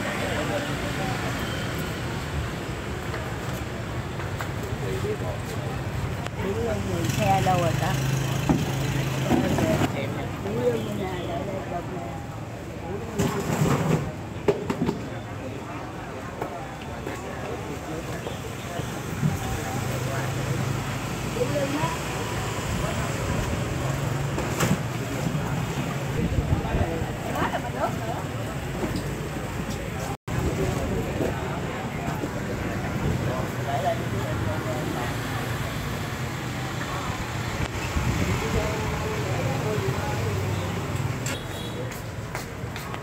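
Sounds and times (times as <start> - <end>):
background chatter: 0.0 - 43.0
faint voices: 0.0 - 43.0
street traffic: 0.0 - 43.0.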